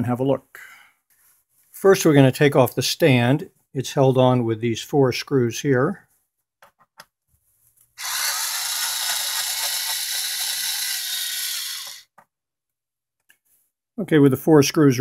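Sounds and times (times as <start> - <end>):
electric screwdriver running: 8.0 - 12.1.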